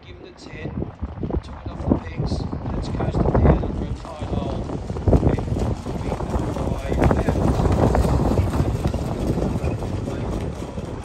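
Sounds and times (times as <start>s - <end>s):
horse hoofbeats on sand: 2.0s - 11.0s.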